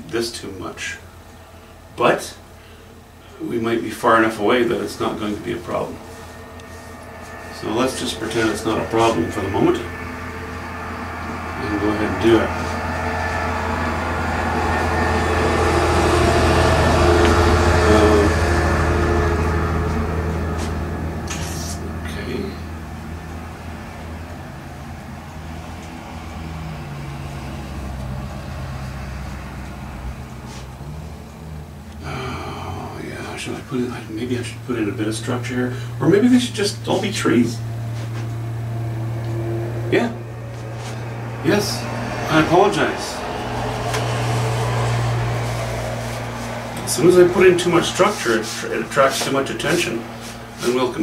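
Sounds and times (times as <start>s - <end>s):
low mechanical rumble: 0.0s - 51.0s
wavering humming tone: 4.3s - 51.0s.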